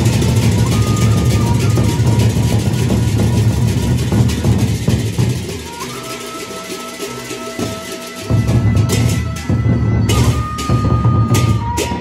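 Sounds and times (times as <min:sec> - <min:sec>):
barrel drums beaten fast: 0:00.0 - 0:12.0
hand cymbals clashing: 0:00.0 - 0:12.0.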